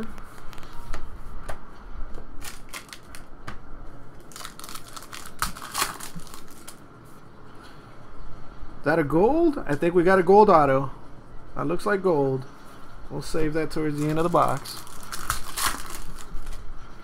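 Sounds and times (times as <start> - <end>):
foil wrappers crinkling: 2.4 - 3.3, 4.2 - 6.8, 13.9 - 16.7.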